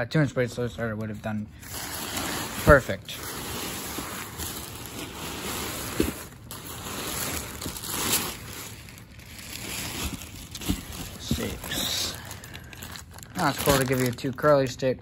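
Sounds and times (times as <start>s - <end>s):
plastic bag crinkling: 1.0s - 14.8s
nylon fabric rustling: 1.6s - 14.2s.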